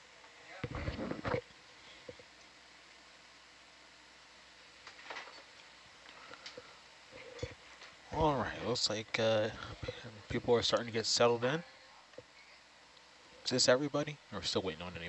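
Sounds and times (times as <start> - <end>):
steady low hiss: 0.0 - 15.0.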